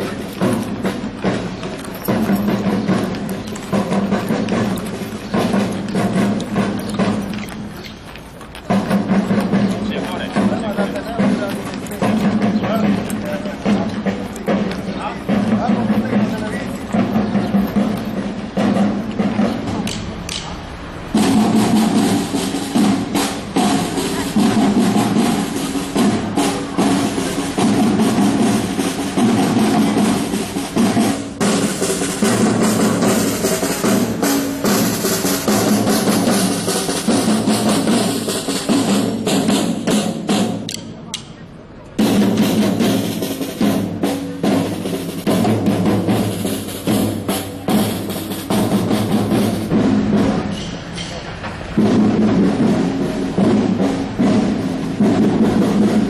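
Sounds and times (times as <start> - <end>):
horses' hooves clopping on asphalt: 0.0 - 56.0
marching snare drums: 0.0 - 56.0.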